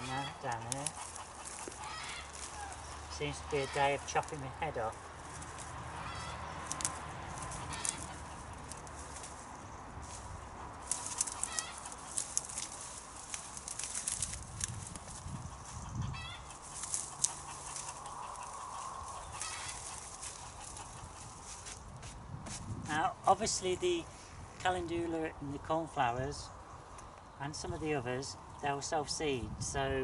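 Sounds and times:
plant stems rustling and crackling: 0.0s - 25.2s
short bird calls: 1.2s - 3.8s, 6.0s - 8.5s, 11.1s - 12.1s, 17.3s - 21.2s.

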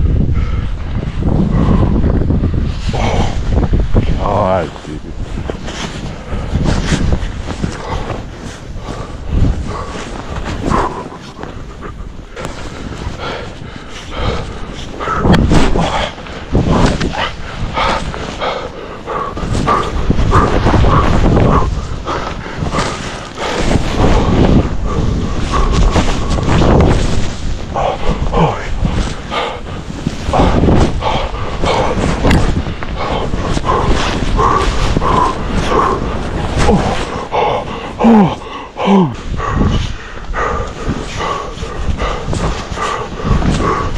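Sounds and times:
skier grunting and breathing: 0.0s - 43.9s
wind buffeting microphone: 0.0s - 43.9s
skis plowing through powder snow: 2.6s - 37.9s.

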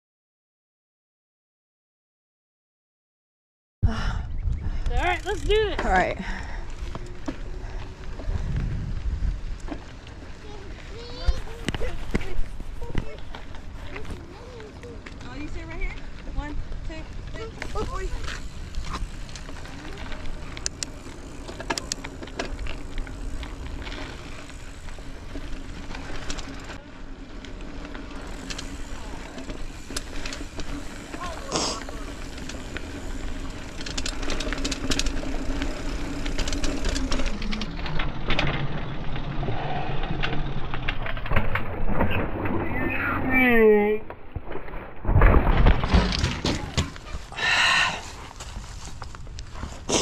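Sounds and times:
wind and tyre noise: 3.8s - 50.0s
bike rattling over bumps: 4.6s - 43.2s, 44.1s - 50.0s.

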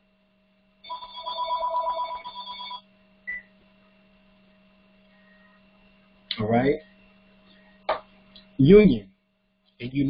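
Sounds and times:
steady low hum: 0.0s - 10.0s
telephone ringing electronic trill: 0.8s - 2.9s.

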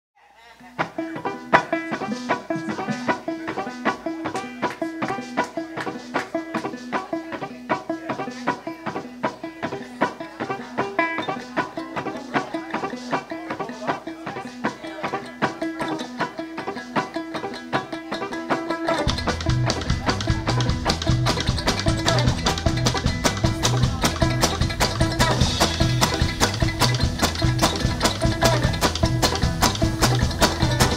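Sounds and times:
picked banjo and guitar: 0.3s - 30.9s
string band playing: 0.7s - 30.9s.

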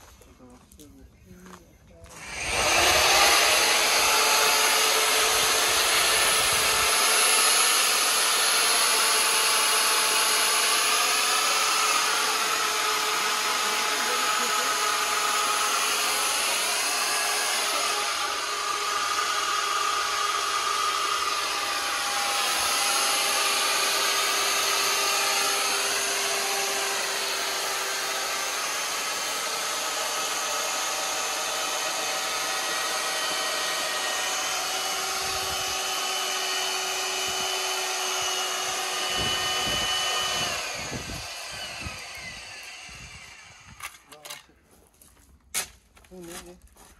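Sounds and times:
electric drill motor whine: 2.0s - 44.4s.

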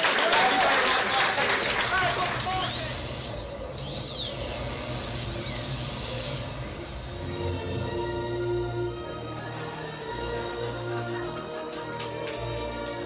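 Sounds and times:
audience applause: 0.0s - 2.8s, 9.6s - 13.0s
music: 0.0s - 13.0s.

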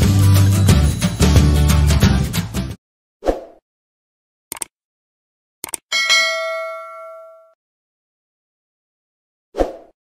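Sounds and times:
click: 4.5s - 4.7s, 5.6s - 5.8s
bright bell ding: 5.9s - 7.6s.

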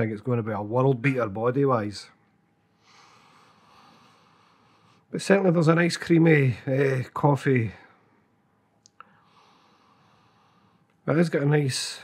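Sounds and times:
long nasal sniff: 2.8s - 5.1s, 9.1s - 10.8s.

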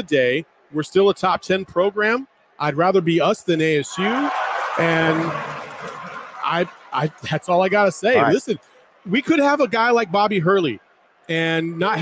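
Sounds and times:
man speaking: 0.0s - 5.3s, 6.4s - 12.0s.

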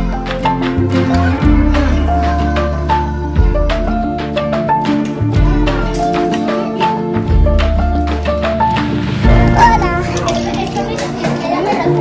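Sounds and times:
background music with held notes: 0.0s - 12.0s
children playing: 9.3s - 12.0s.

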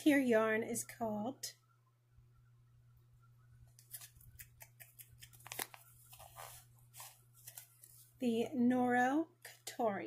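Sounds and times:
hands rustling yarn: 5.2s - 8.2s.

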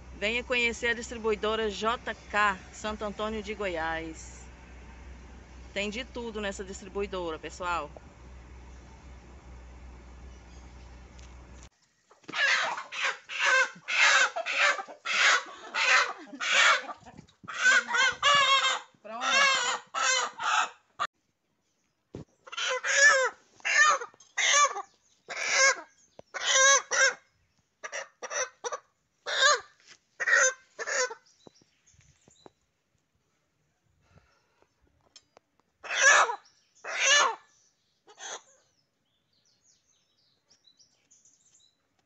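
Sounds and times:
chicken squawking: 12.2s - 21.1s, 22.4s - 31.2s, 35.8s - 38.6s.

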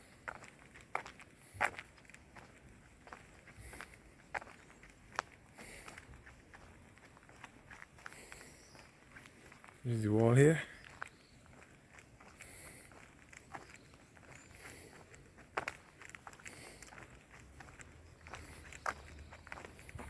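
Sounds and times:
footsteps on asphalt: 0.0s - 20.0s.

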